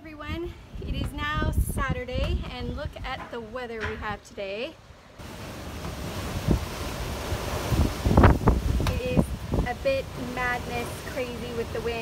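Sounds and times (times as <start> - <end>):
gusty wind buffeting microphone: 0.1 - 3.3, 5.2 - 12.0.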